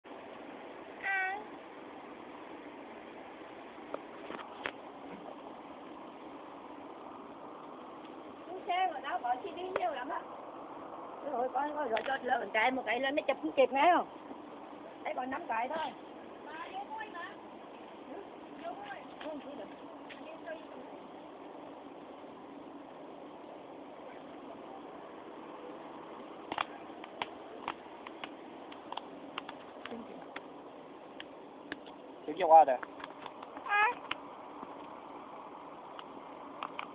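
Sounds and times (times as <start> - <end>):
steady background hiss: 0.1 - 36.9.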